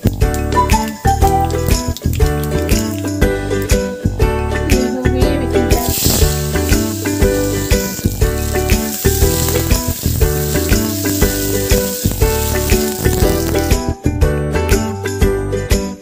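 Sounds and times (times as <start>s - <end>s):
background music with steady beat: 0.0s - 16.0s
food sizzling in hot oil: 5.6s - 13.9s.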